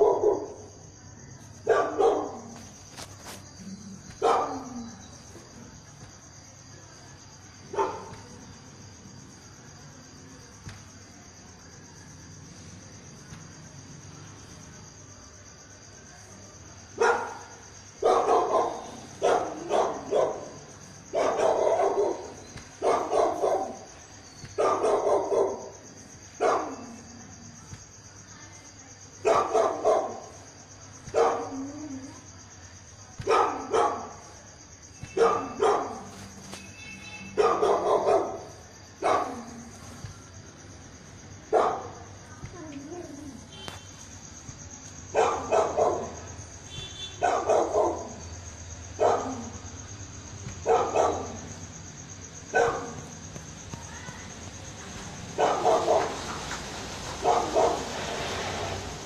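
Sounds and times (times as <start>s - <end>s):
dog barking: 0.0s - 0.7s, 1.6s - 2.6s, 4.1s - 5.0s, 7.7s - 8.3s, 17.0s - 23.9s, 24.5s - 27.1s, 29.2s - 30.4s, 31.1s - 31.7s, 33.2s - 34.4s, 35.0s - 36.2s, 37.2s - 39.7s, 41.5s - 42.1s, 45.1s - 46.3s, 47.0s - 48.2s, 48.9s - 49.6s, 50.6s - 51.6s, 52.4s - 53.2s, 55.4s - 56.2s, 57.2s - 57.9s.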